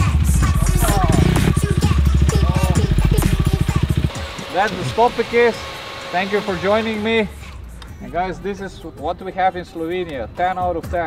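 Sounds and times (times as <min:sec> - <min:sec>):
motorcycle engine idling: 0:00.0 - 0:07.7.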